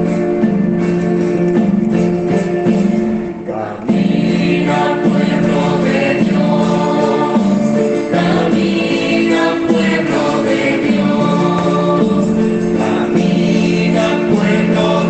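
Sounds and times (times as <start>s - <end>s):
choir singing with instrumental backing: 0.0s - 15.0s.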